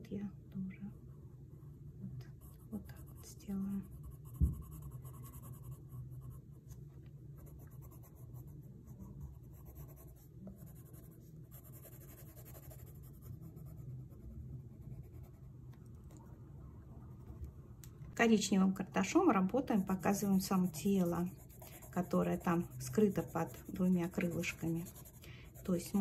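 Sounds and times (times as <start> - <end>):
pencil scratching on paper: 2.4 - 6.4, 7.4 - 15.4, 19.6 - 26.0
low thump: 4.3 - 4.8.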